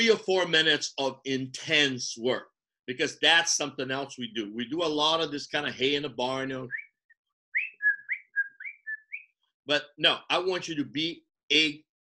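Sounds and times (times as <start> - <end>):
high whistled chirps: 6.6 - 9.4.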